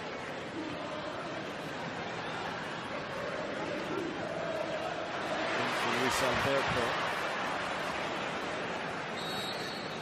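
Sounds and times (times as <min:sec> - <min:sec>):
stadium crowd noise: 0:00.0 - 0:10.0.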